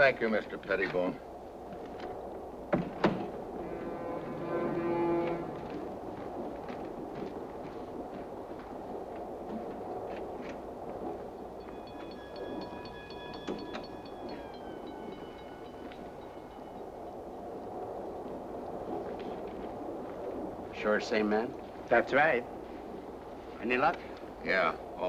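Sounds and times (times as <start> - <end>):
high pulsing ringing: 11.2 - 17.7
railroad car rumbling: 11.4 - 17.4.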